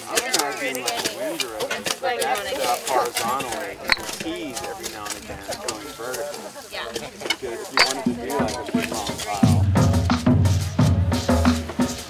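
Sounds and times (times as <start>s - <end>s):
people talking: 0.0s - 9.7s.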